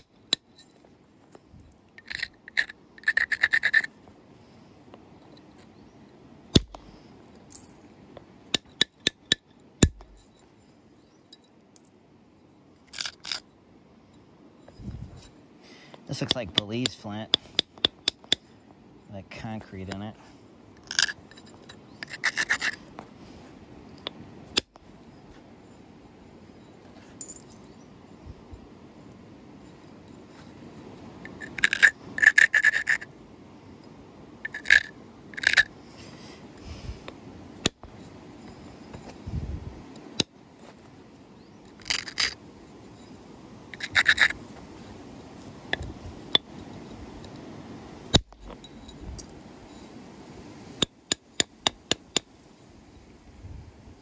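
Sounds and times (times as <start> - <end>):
flint being rubbed: 2.0 - 4.0, 12.9 - 13.4, 20.8 - 23.6, 31.3 - 33.1, 34.5 - 36.8, 41.7 - 42.4, 43.7 - 45.5
antler striking flint: 6.5 - 6.9, 8.6 - 10.3, 16.2 - 18.5, 43.8 - 44.4, 48.1 - 48.8, 50.8 - 52.3.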